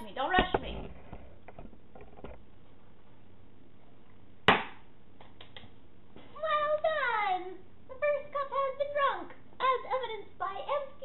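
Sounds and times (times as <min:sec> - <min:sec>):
sharp knock: 0:04.5 - 0:04.8.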